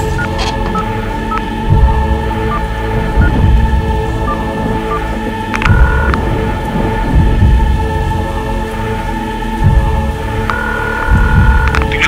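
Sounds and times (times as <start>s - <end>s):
rain: 0.0s - 12.0s
rolling thunder: 1.7s - 10.4s.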